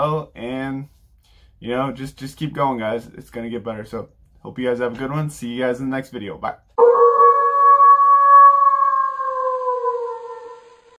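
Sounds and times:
wolf howling: 6.8s - 11.0s.

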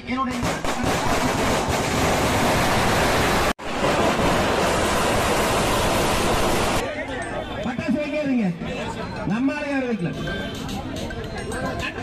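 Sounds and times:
firecrackers crackling: 0.4s - 6.8s.

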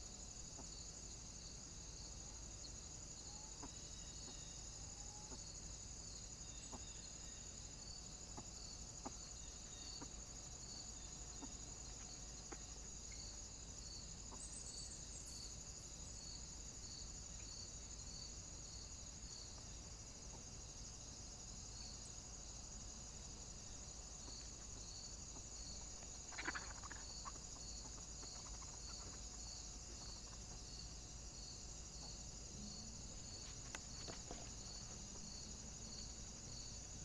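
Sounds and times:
high-pitched insect chorus: 0.0s - 37.0s.

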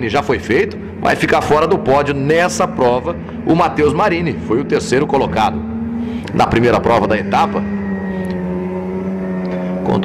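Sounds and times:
race car engines running: 0.0s - 10.0s.

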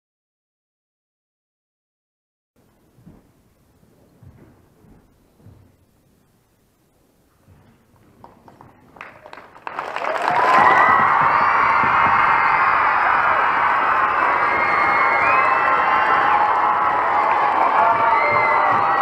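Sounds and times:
clapping: 8.2s - 19.0s
children cheering and shouting: 10.0s - 19.0s.

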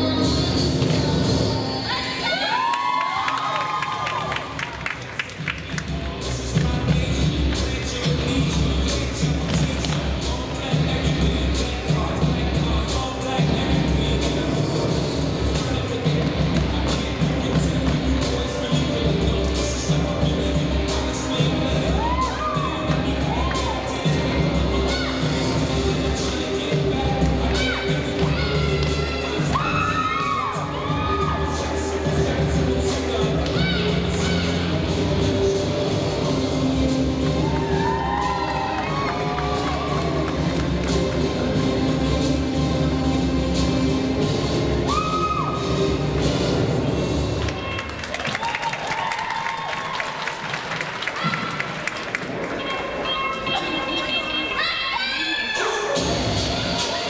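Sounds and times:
hip hop dance music: 0.0s - 57.0s
audience cheering and shouting: 1.4s - 5.8s, 21.3s - 41.7s, 44.2s - 46.7s, 47.4s - 57.0s.

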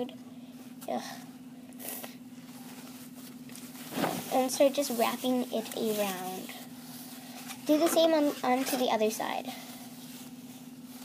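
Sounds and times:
steady low hum: 0.0s - 11.0s
toilet paper rustling: 2.5s - 9.0s.

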